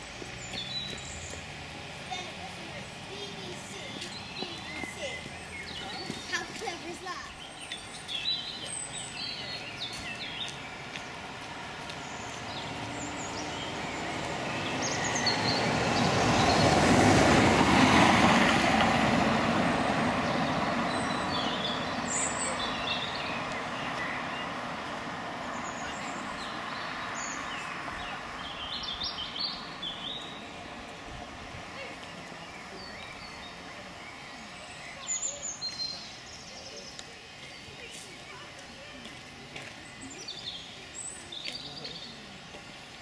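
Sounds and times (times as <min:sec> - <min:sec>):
birds chirping: 0:00.0 - 0:43.0
distant steam locomotive roar: 0:11.2 - 0:34.0.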